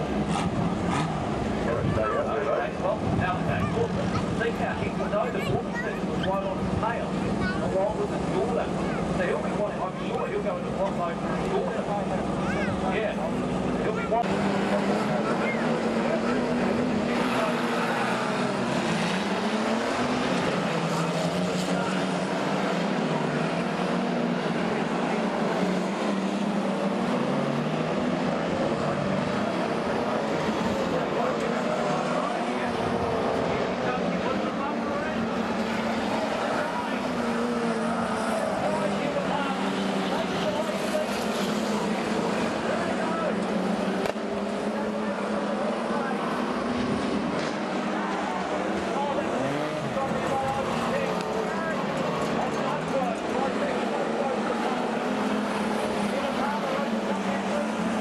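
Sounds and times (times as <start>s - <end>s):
racing car engines: 0.0s - 58.0s.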